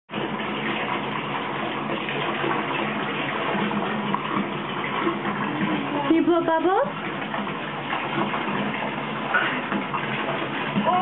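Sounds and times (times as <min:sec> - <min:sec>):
tap water running into bathtub: 0:00.1 - 0:11.0.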